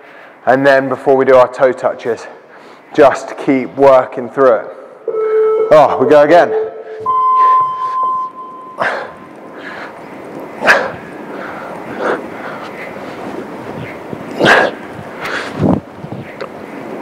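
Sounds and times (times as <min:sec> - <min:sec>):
long electronic timer beep: 0:05.1 - 0:09.2.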